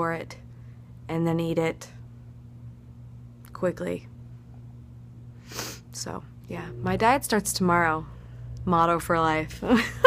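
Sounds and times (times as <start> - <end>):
steady low hum: 0.0 - 10.0
woman's sharp burst of breath: 5.4 - 5.9.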